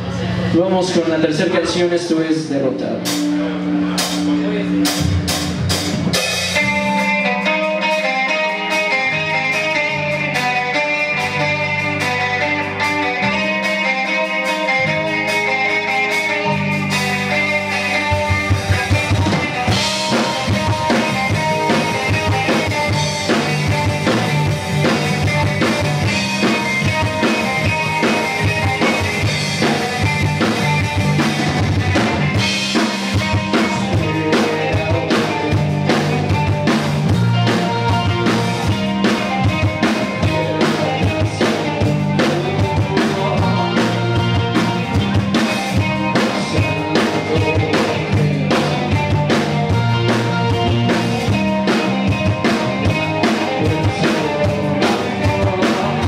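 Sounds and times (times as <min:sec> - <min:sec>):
bass guitar: 0:00.0 - 0:56.0
drum kit: 0:00.0 - 0:56.0
electric guitar: 0:00.0 - 0:56.0.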